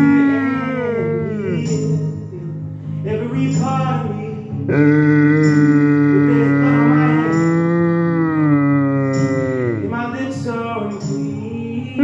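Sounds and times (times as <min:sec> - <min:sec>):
dog howling: 0:00.0 - 0:01.6.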